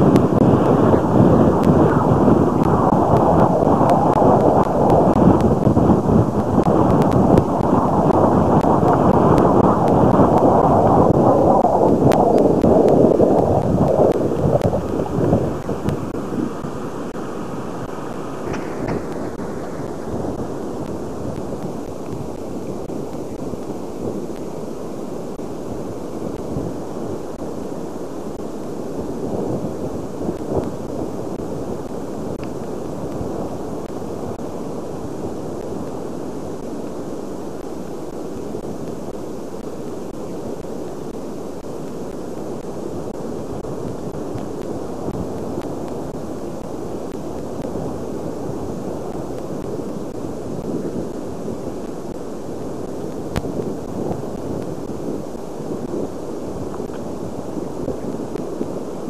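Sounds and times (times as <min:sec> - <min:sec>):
wind gusting on microphone: 0:00.0 - 0:59.0.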